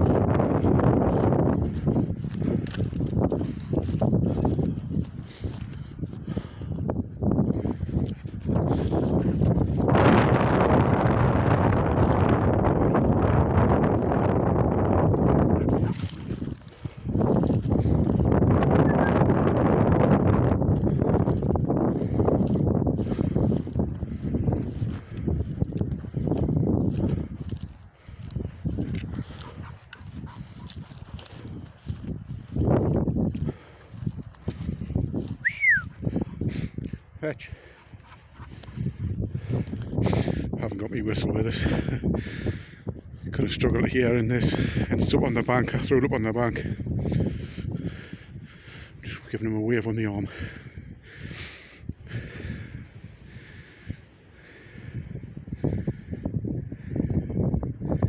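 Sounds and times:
footsteps through long grass: 0.0s - 48.1s
wind buffeting microphone: 0.0s - 58.0s
short falling whistle: 35.4s - 35.9s.

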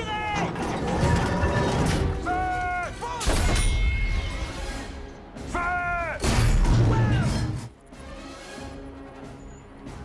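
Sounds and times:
orchestral film music: 0.0s - 10.0s.

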